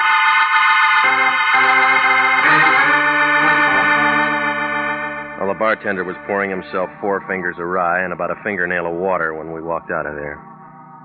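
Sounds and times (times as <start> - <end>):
organ chord: 0.0 - 11.0.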